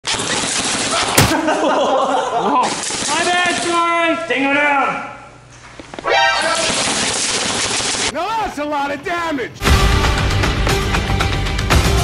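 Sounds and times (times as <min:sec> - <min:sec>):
man calling out: 0:08.1 - 0:09.6.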